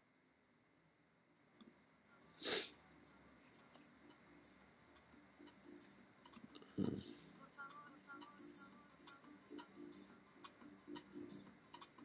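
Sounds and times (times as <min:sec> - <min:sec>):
sharp breath or sniff: 0:02.4 - 0:02.8.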